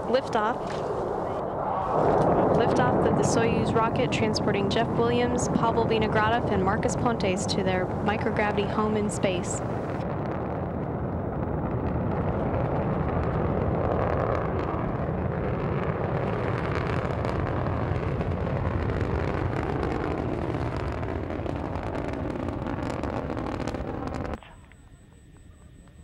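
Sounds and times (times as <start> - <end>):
rocket engines rumbling: 0.0 - 26.0.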